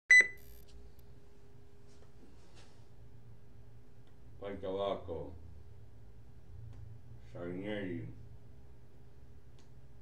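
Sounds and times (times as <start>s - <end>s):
electronic double beep: 0.1s - 0.6s
faint steady hum: 0.1s - 10.0s.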